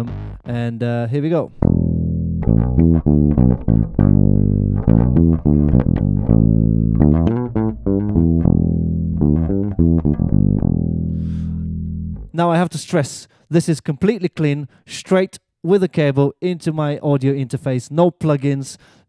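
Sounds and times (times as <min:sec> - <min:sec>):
electric bass plucked bassline: 0:00.0 - 0:00.7, 0:01.6 - 0:12.4.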